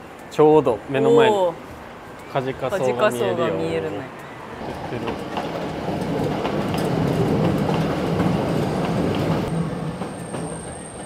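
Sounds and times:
electric train rumbling past: 0:04.6 - 0:11.0.

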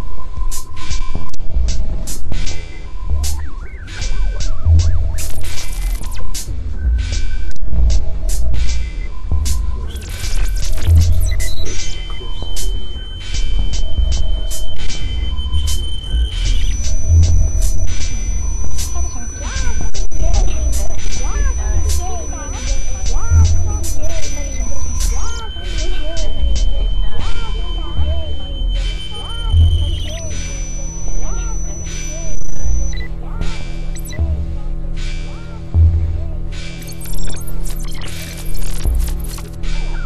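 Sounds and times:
deep bass pulses: 0:00.0 - 0:40.0
steady high whine: 0:00.0 - 0:40.0
sharp click: 0:00.5 - 0:27.5, 0:36.6 - 0:40.0
steady high tone: 0:02.1 - 0:40.0.

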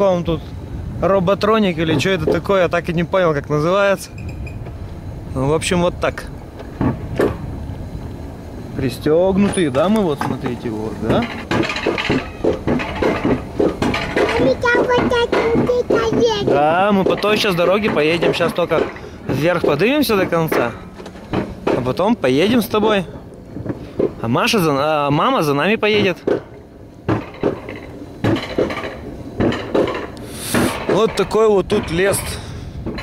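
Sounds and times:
coaster sled clanking on rails: 0:00.0 - 0:33.0
child's voice: 0:14.2 - 0:16.7.

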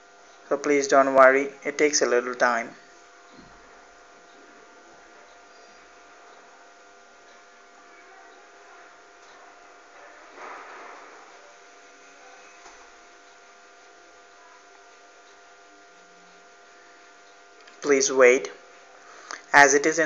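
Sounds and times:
faint room hum: 0:00.0 - 0:20.0
thin steady tones: 0:00.0 - 0:20.0.

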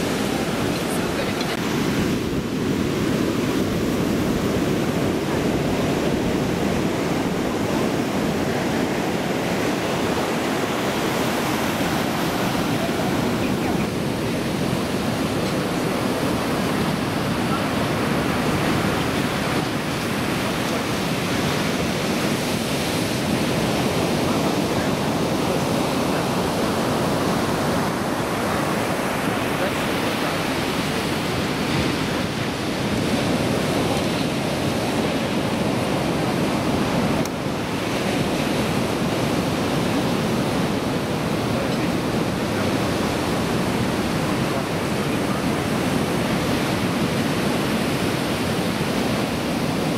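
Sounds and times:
heavy surf waves breaking: 0:00.0 - 0:49.9.

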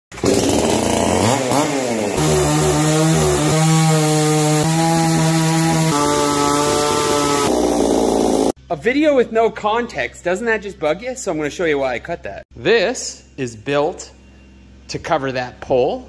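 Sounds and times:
chainsaw revving and cutting wood: 0:00.1 - 0:08.6.

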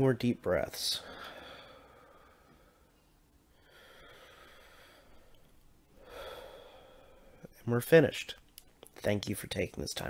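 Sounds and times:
man breathing deeply: 0:01.0 - 0:07.5.

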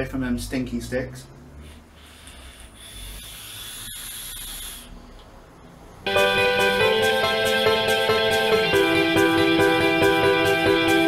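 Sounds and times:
electronic cigarette vapour hiss: 0:01.7 - 0:05.0.

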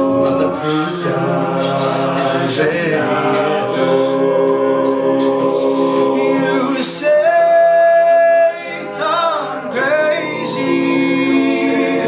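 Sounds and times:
group singing backing chords: 0:00.0 - 0:12.0.

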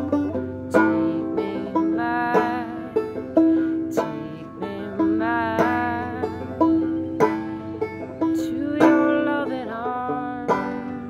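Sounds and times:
banjo picking: 0:00.0 - 0:11.0.

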